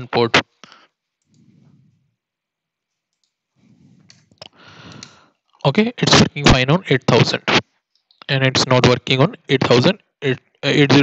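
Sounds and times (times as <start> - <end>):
faint computer mouse clicks: 1.2 - 1.5.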